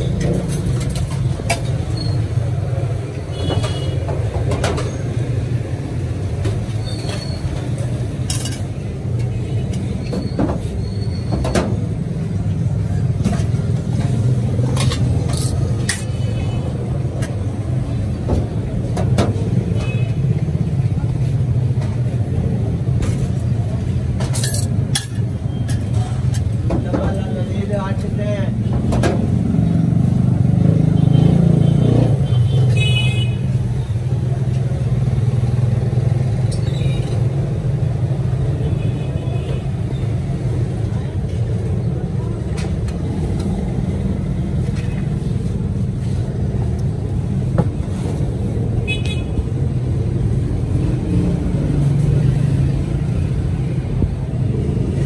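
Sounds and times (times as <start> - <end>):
traffic rumble: 0.0 - 55.0.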